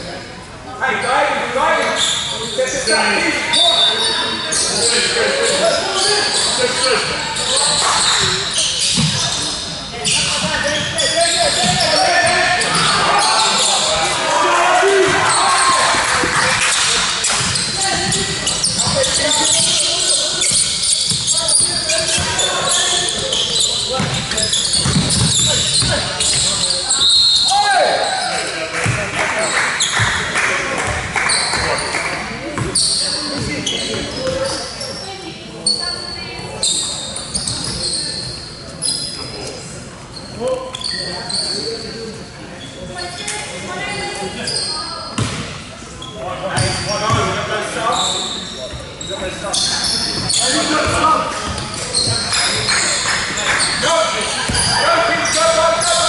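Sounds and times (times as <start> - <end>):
voices calling out: 1.9 - 39.3
basketball bouncing on court: 8.9 - 9.3, 15.1 - 19.8, 24.0 - 26.5, 45.2 - 45.6.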